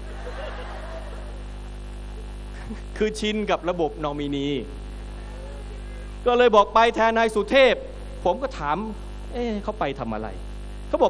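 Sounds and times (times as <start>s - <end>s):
electrical mains hum: 0.0s - 11.0s
faint background hiss: 0.0s - 11.0s.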